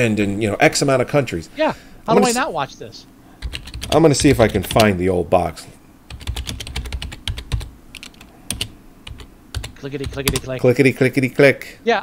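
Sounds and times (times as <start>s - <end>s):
typing on computer keyboard: 3.4s - 4.9s, 6.1s - 10.5s.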